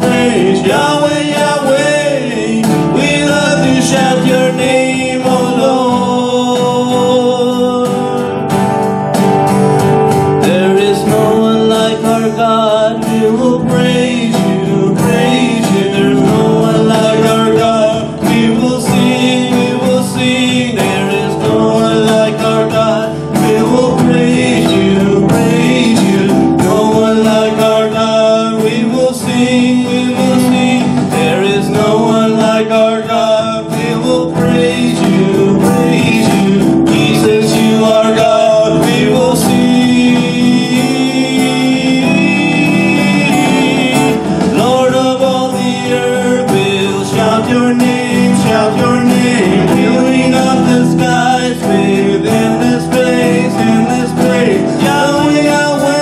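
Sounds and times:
acoustic guitar strumming: 0.0s - 56.0s
men singing: 0.0s - 56.0s.

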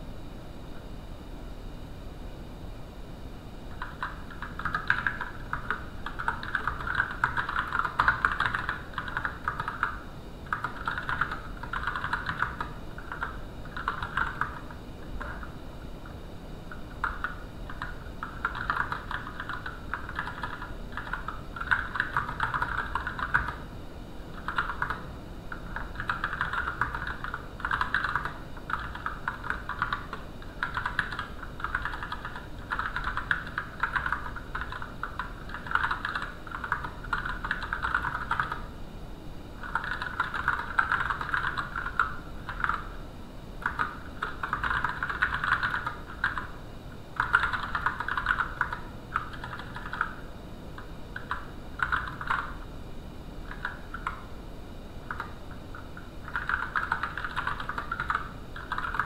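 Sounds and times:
typing on computer keyboard: 3.7s - 23.7s, 24.3s - 38.7s, 39.6s - 43.0s, 43.6s - 50.2s, 50.8s - 52.6s, 53.5s - 54.3s, 55.1s - 59.0s.

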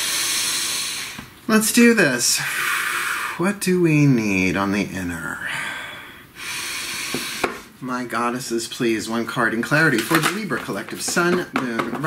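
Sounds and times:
long breath hiss: 0.0s - 1.3s, 2.3s - 3.4s, 5.4s - 7.7s.

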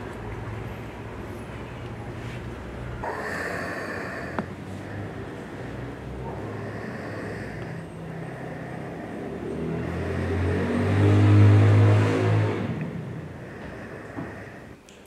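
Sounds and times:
vehicle engine passing by: 0.0s - 14.7s.

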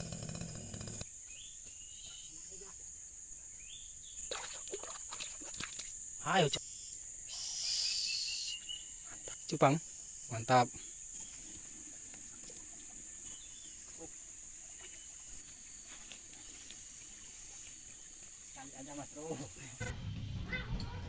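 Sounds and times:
insects droning: 0.0s - 20.0s.

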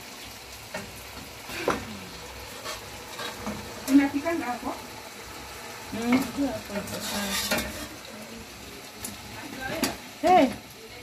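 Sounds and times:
meat sizzling in bubbling sauce: 0.0s - 11.0s
wooden spoon stirring: 6.0s - 8.2s.

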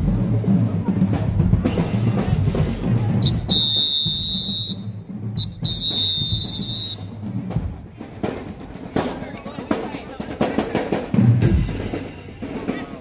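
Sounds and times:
whistle blasts: 3.2s - 7.1s.

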